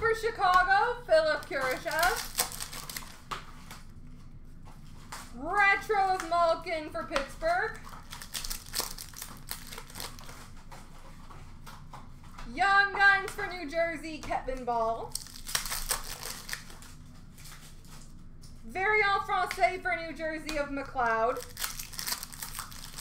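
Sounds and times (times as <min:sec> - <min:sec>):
person speaking: 0:00.0 - 0:02.4, 0:05.3 - 0:07.8, 0:12.5 - 0:15.1, 0:18.6 - 0:21.5
card pack wrappers crinkling: 0:01.1 - 0:03.8, 0:07.7 - 0:10.5, 0:15.1 - 0:18.0, 0:21.3 - 0:23.0.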